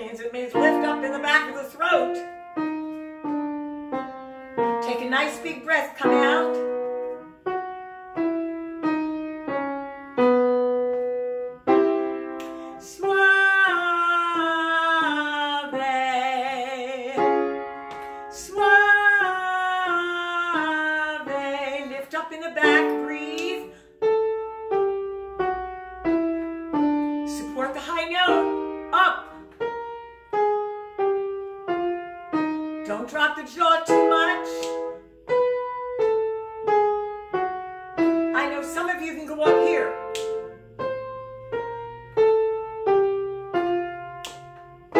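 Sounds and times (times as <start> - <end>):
woman singing scales: 0.0 - 2.4, 4.6 - 7.1, 12.4 - 23.8, 27.2 - 29.7, 32.8 - 35.0
piano single notes: 0.2 - 44.9.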